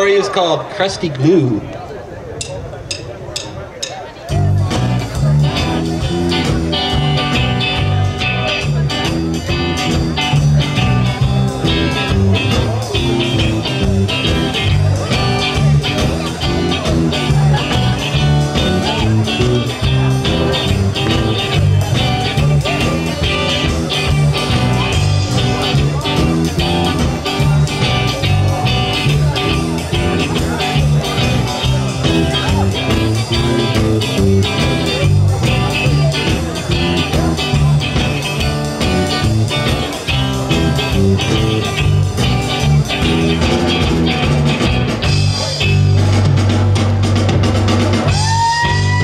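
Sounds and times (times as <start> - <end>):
rock band playing: 2.4 - 49.0.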